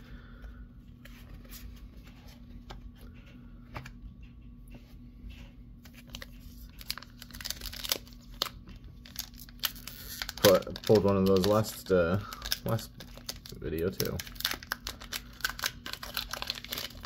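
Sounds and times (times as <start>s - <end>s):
foil wrapper crinkling: 5.9s - 17.0s.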